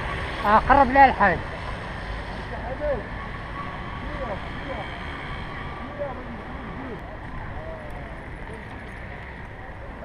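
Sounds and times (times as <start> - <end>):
faint voices: 0.5 - 10.0.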